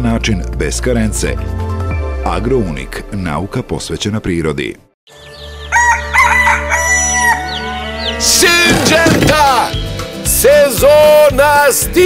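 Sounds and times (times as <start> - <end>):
music: 0.0 - 12.0
rooster crowing: 5.6 - 8.2.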